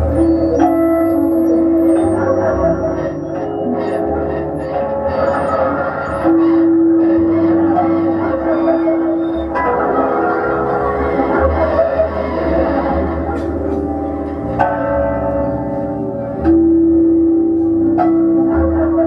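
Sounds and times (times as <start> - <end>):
dense electronic drone: 0.0 - 19.0
sustained bell-like tones: 0.0 - 19.0.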